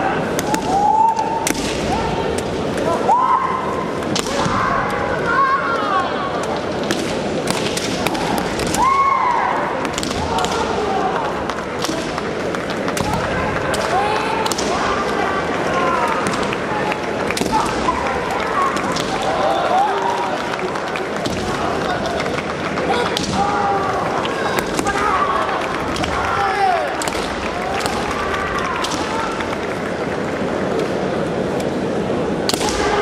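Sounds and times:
hall background noise: 0.0s - 33.0s.

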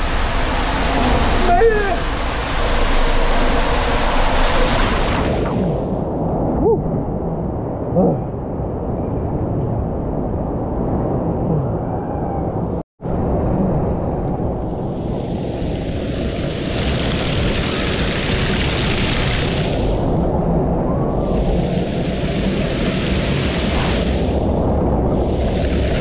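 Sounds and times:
low rumble: 0.0s - 26.0s
water pouring and splashing: 14.7s - 20.2s.

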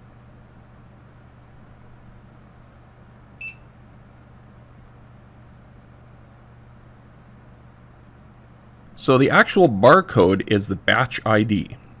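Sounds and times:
faint low hum: 0.0s - 12.0s
barcode scanner beep: 3.4s - 3.6s.

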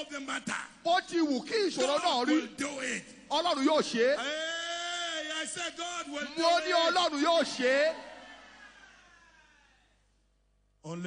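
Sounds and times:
echo of man shouting preaching: 0.0s - 9.4s.

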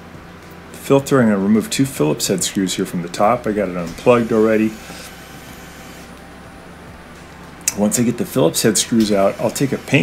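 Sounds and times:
cordless drill running: 3.6s - 6.6s, 8.8s - 10.0s.

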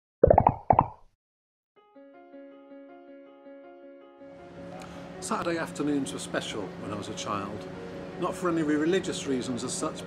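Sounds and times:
cartoon pops rising in pitch: 0.2s - 1.0s
soft music: 1.8s - 10.0s.

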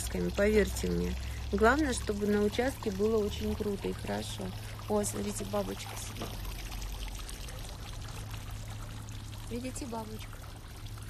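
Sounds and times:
fountain water splashing: 0.0s - 11.0s
steady low hum: 0.0s - 11.0s.

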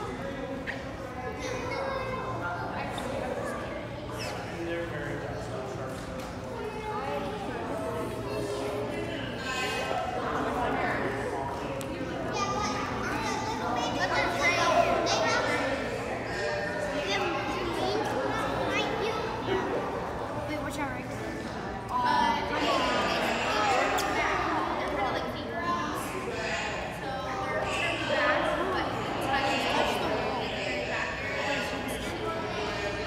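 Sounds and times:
background chatter of children: 0.0s - 33.0s.

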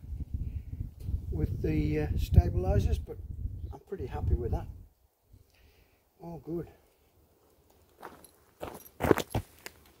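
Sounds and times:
footsteps: 7.4s - 10.0s.

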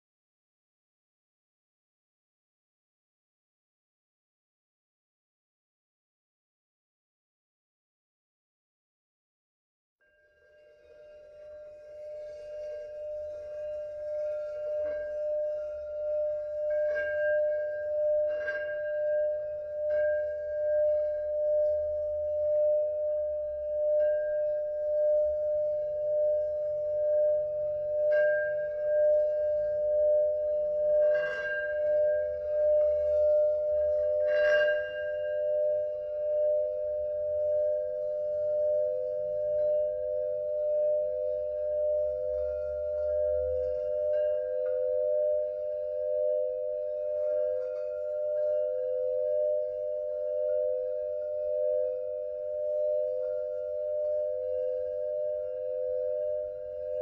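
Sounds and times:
singing bowl ringing tone: 10.0s - 57.0s
mallet scratching bowl rim: 24.0s - 57.0s.

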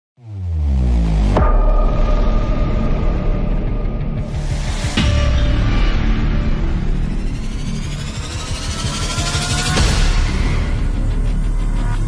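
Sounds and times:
dense low rumble: 0.8s - 12.0s.

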